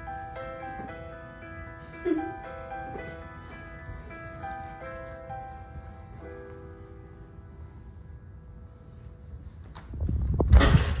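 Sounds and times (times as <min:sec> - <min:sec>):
heavy footsteps on wooden floor: 0:00.0 - 0:06.8.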